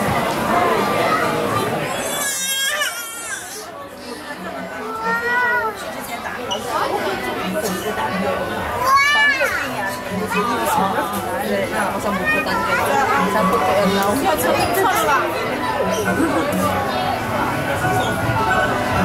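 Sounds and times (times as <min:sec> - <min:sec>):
visitors chattering: 0:00.0 - 0:19.0.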